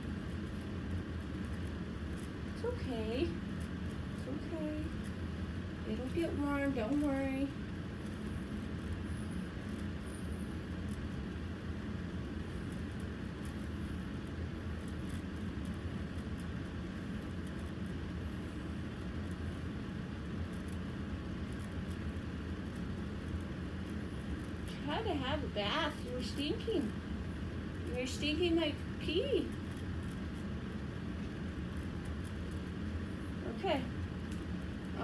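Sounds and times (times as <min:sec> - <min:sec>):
appliance humming and hissing: 0:00.0 - 0:35.0.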